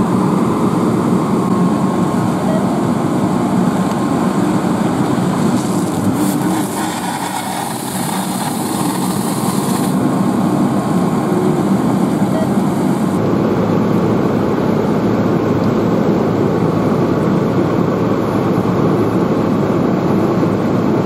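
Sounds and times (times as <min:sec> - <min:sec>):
diesel engine running: 0:00.0 - 0:21.0
hiss: 0:05.6 - 0:10.0.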